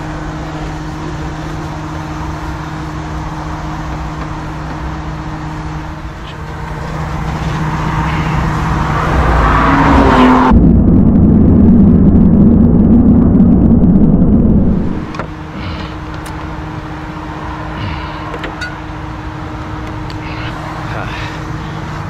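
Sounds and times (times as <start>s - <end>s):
idling diesel engine hum: 0.0s - 9.7s, 10.3s - 22.0s
road traffic rumble: 0.0s - 22.0s.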